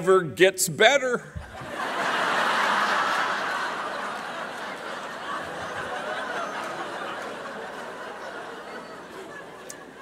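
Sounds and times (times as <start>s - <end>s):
audience laughing: 1.4s - 10.0s.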